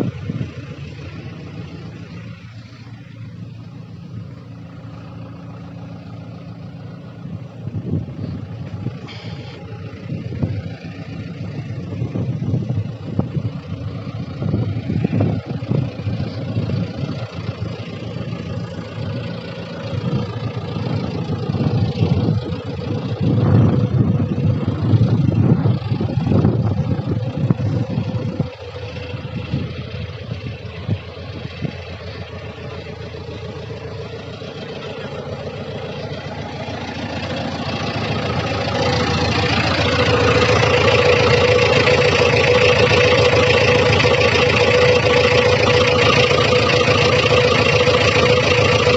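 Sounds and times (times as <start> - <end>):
diesel engine running: 0.0 - 48.9.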